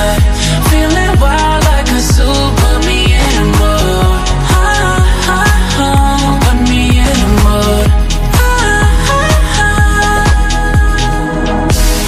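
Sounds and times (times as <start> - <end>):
pop song: 0.0 - 12.0
deep bass notes dropping in pitch: 6.0 - 11.0.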